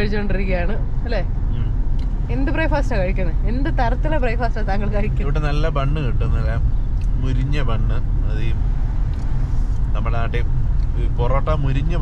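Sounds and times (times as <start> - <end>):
car cabin road and engine rumble: 0.0 - 12.0.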